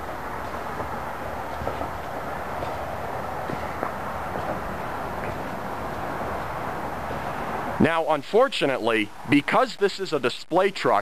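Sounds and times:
unsteady low rumble: 0.0s - 7.9s
outdoor hiss: 0.0s - 11.0s.

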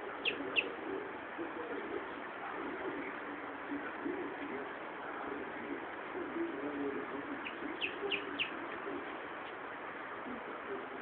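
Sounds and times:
high bird chirps: 0.2s - 0.7s, 7.4s - 8.6s
doves cooing: 6.2s - 9.2s.

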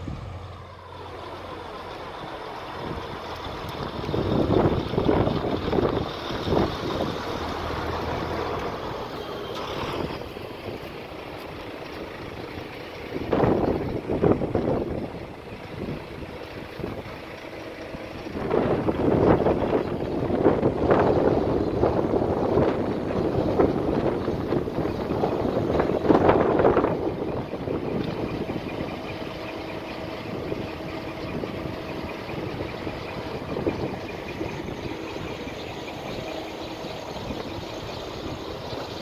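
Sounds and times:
outdoor background noise: 0.0s - 39.0s
wind buffeting microphone: 2.2s - 9.2s, 9.8s - 39.0s.

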